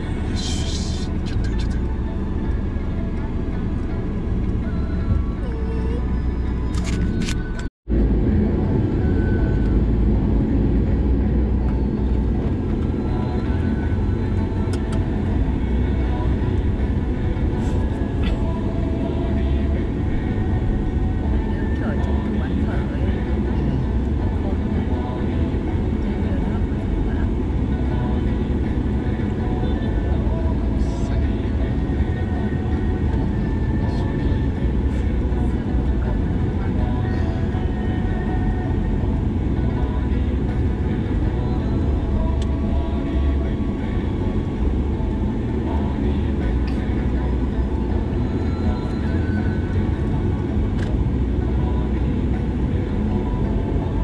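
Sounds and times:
car driving heard from cabin: 0.0 - 54.0.

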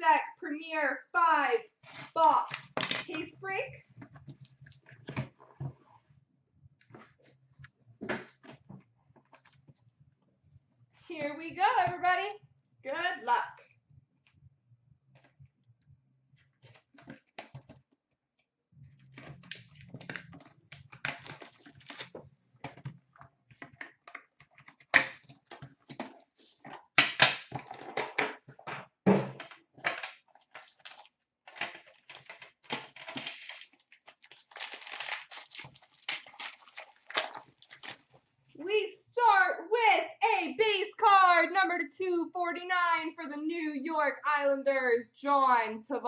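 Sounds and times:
plastic wrapping crinkling: 30.3 - 31.1, 33.4 - 38.3.

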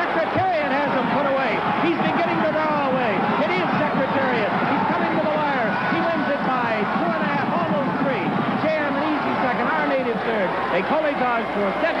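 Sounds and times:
crowd cheering: 0.0 - 12.0
race caller's voice: 0.0 - 12.0.

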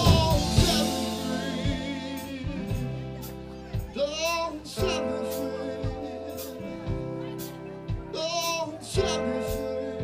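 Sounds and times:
blues-rock band playing: 0.0 - 10.0.

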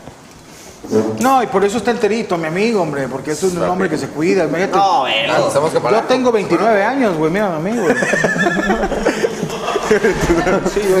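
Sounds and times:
men laughing and talking: 4.7 - 11.0
high wavering laugh: 7.7 - 11.0.

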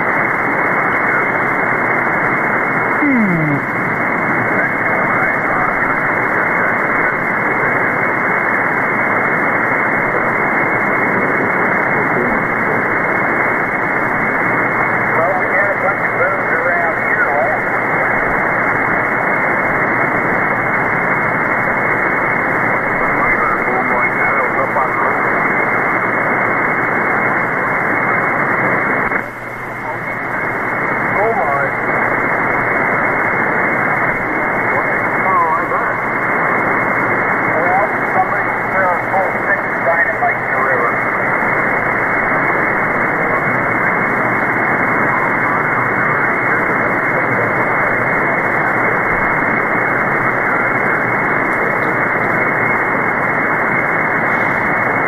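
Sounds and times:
radio static hiss: 0.0 - 55.0
faint radio operator voice: 0.1 - 55.0.

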